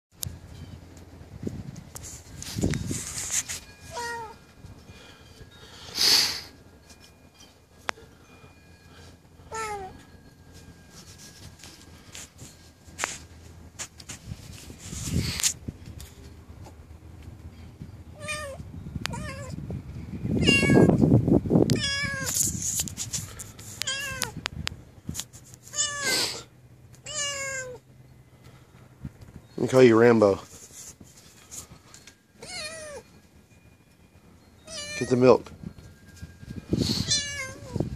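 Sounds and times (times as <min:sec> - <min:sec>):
kitten meowing: 0:20.4 - 0:20.9, 0:21.7 - 0:22.3, 0:23.8 - 0:24.4, 0:25.7 - 0:26.4, 0:27.0 - 0:27.8, 0:36.9 - 0:37.8.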